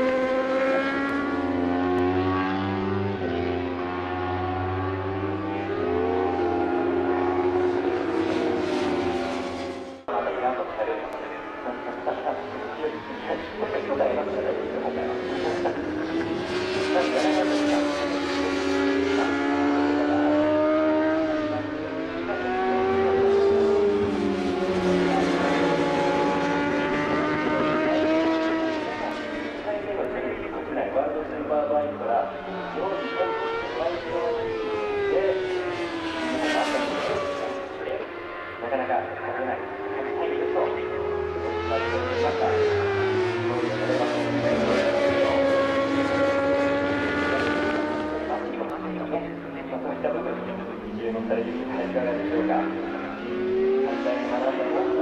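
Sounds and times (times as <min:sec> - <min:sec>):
motorcycle engines racing: 0:00.0 - 0:55.0.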